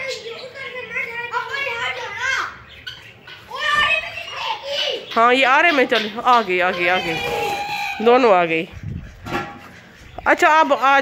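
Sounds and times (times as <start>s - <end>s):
children calling out: 0.0s - 8.4s.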